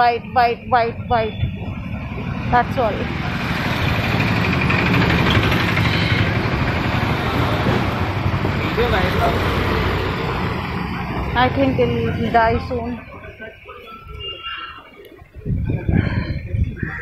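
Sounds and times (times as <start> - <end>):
vehicle passing by: 1.6 - 13.4.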